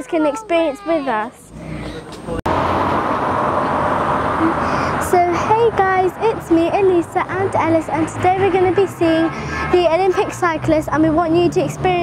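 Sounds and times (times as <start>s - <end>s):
crowd babble: 0.0s - 2.4s
traffic: 0.0s - 12.0s.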